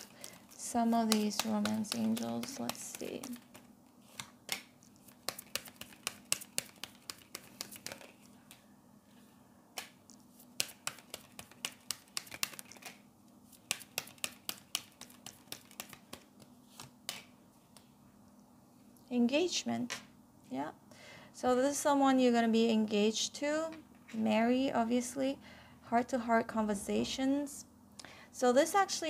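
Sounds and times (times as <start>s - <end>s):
cards being shuffled: 0.0s - 8.6s, 9.8s - 17.9s
card snaps and flicks: 9.8s - 13.0s.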